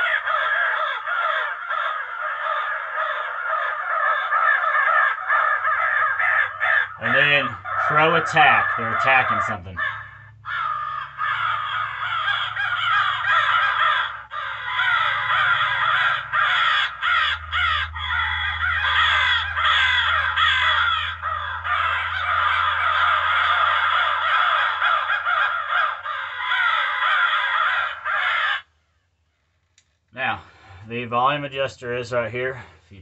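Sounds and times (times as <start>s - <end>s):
crows cawing from speaker: 0.0s - 28.9s.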